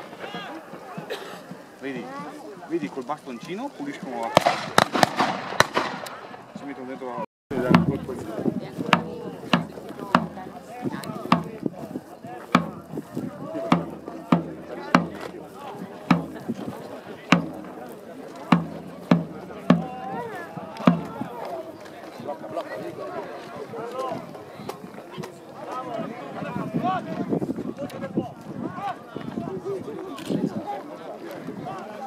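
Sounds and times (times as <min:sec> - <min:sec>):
murmur of voices: 0:00.0 - 0:32.0
marching drum beating: 0:07.5 - 0:11.8, 0:12.5 - 0:21.5.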